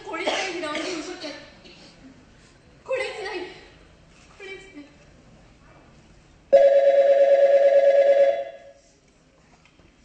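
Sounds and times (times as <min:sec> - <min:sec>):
warbling electronic telephone ring: 0:06.6 - 0:08.6.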